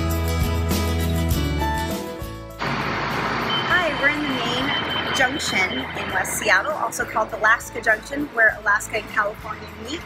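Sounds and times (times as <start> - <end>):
background music: 0.0 - 10.0
street traffic noise: 2.5 - 10.0
steady high electronic tone: 2.6 - 7.5
woman speaking: 3.7 - 10.0.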